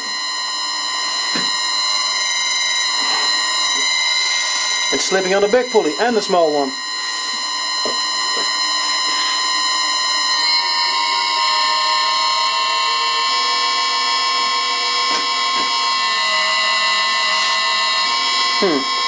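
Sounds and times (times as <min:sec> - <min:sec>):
electric motor whining: 0:00.0 - 0:19.0.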